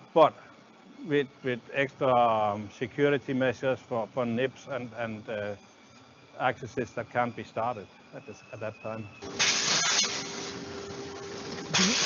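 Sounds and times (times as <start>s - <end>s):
machine humming: 0.0s - 12.0s
hiss of moving film and air: 9.4s - 10.6s.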